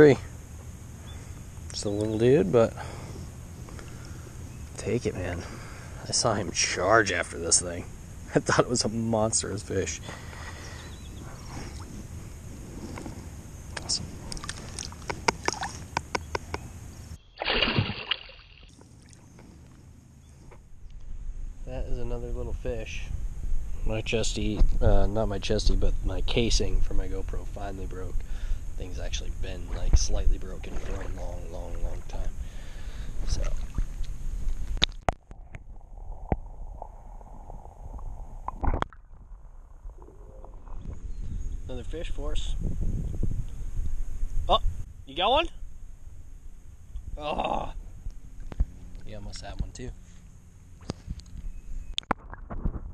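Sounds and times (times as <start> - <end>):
wind on microphone: 10.6 - 16.8, 20.8 - 27.0, 33.1 - 45.0
muffled splash: 13.8 - 16.4, 17.4 - 19.2, 29.6 - 32.4, 33.2 - 41.1
water sloshing: 13.8 - 16.6, 17.4 - 19.4, 29.8 - 32.3
underwater clicks and knocks: 14.4 - 16.6
water splashing and dripping: 17.4 - 19.2
muffled underwater sound: 29.4 - 32.4, 35.2 - 41.0.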